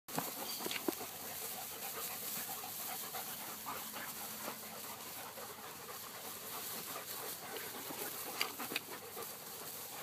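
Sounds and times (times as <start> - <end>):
dogs panting: 0.1 - 10.0
outdoor hiss: 0.1 - 10.0.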